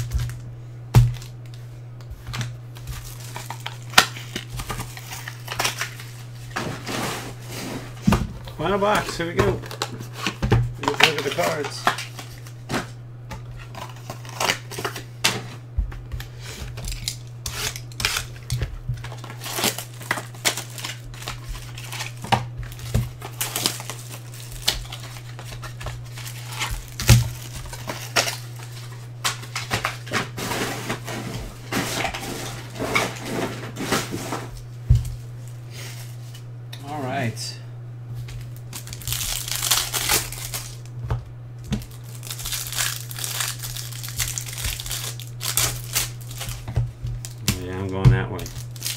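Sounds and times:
low electrical hum: 0:00.0 - 0:48.9
plastic wrapper crinkling and tearing: 0:02.7 - 0:06.6, 0:08.6 - 0:12.6, 0:13.5 - 0:15.1, 0:16.8 - 0:32.6, 0:38.4 - 0:40.9, 0:41.6 - 0:48.9.

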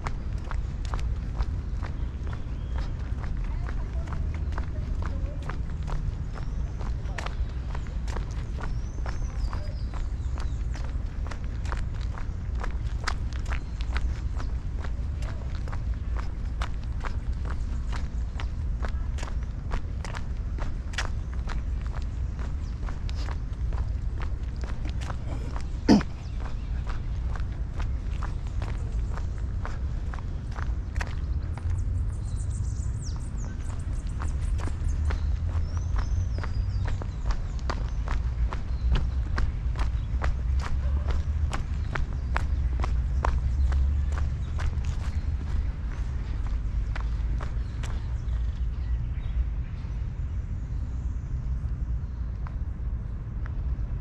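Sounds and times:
constant low rumble: 0:00.0 - 0:54.0
footsteps on paved path: 0:00.0 - 0:54.0.

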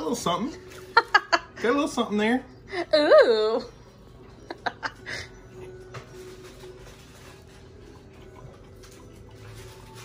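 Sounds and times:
man chewing: 0:06.8 - 0:10.0.

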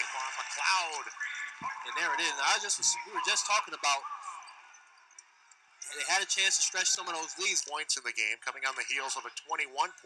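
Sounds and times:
basketball arena ambience: 0:00.0 - 0:10.0.

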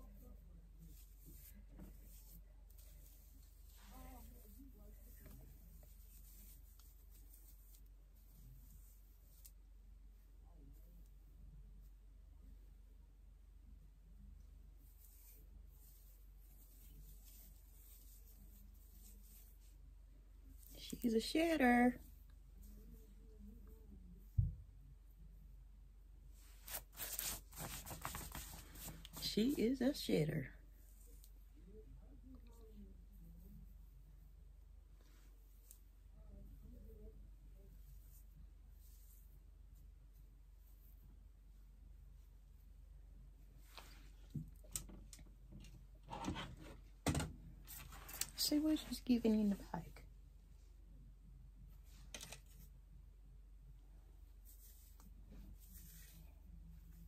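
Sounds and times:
rustling of synthetic hair: 0:00.0 - 0:12.0, 0:14.4 - 0:24.6, 0:26.2 - 0:53.0, 0:54.0 - 0:57.0.

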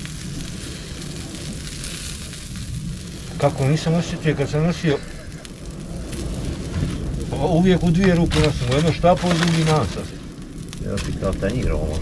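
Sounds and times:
fire pops: 0:00.0 - 0:12.0
wood fire crackling: 0:00.0 - 0:12.0.

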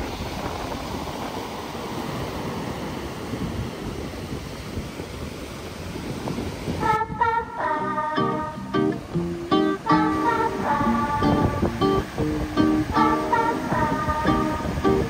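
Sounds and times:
ocean surf breaking on beach: 0:00.0 - 0:15.0
plucked acoustic guitar music: 0:07.8 - 0:15.0.

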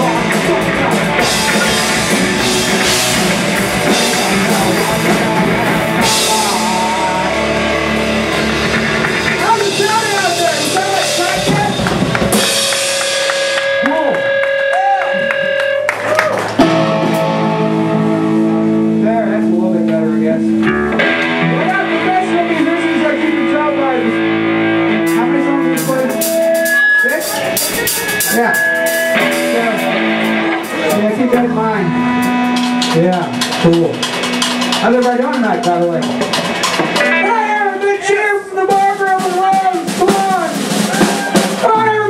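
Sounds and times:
loud band hit: 0:00.0 - 0:14.5, 0:38.7 - 0:41.9
electric guitar note ringing: 0:00.0 - 0:38.1
live rock band: 0:00.0 - 0:42.0
ringing guitar chord: 0:16.6 - 0:33.6.

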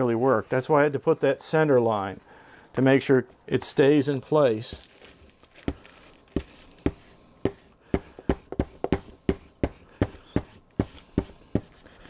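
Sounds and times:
iron knocking and rubbing on film: 0:06.4 - 0:11.8.

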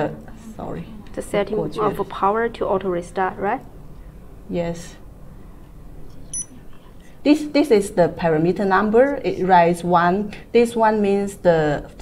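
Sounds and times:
short high beep: 0:06.3 - 0:06.6.

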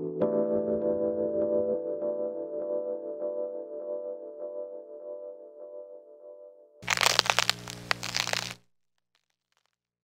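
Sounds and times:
loud crackling: 0:06.8 - 0:08.7.

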